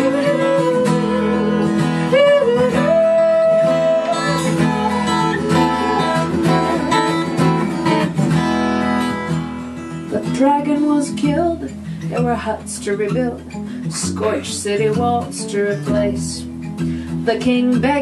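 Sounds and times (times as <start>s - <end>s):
woman singing: 0.0s - 7.9s, 10.1s - 18.0s
strummed acoustic guitar: 0.0s - 18.0s.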